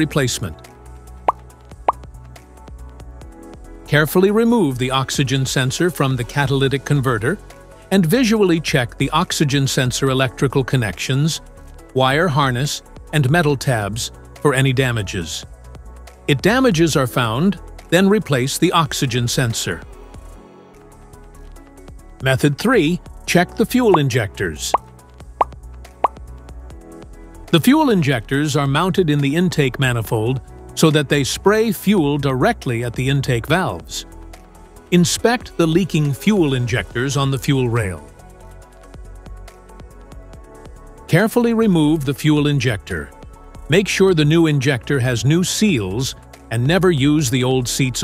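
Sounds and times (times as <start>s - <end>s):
quiet background music: 0.0s - 48.0s
rising pop sound effects: 1.2s - 2.0s.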